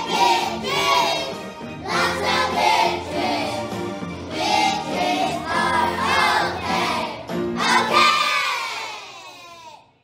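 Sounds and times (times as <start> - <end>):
children shouting a cheer: 7.6 - 10.0.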